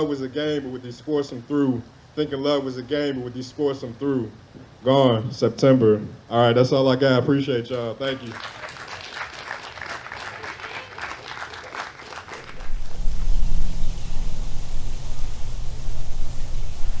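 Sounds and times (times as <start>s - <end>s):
audience applauding: 8.1s - 12.9s
steady low deep sound: 12.4s - 17.0s.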